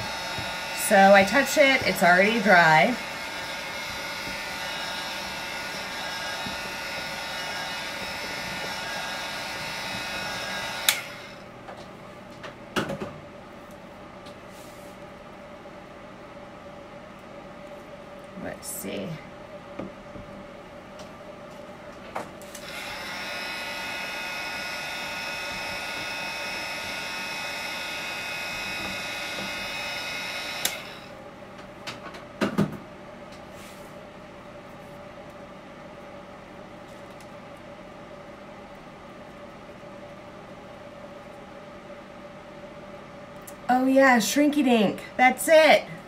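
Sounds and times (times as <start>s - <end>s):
heat gun motor whine: 0.0s - 11.5s, 22.5s - 31.2s.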